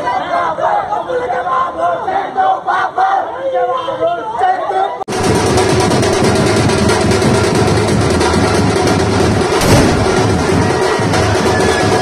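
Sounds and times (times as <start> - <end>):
street drum band beating: 5.1 - 12.0.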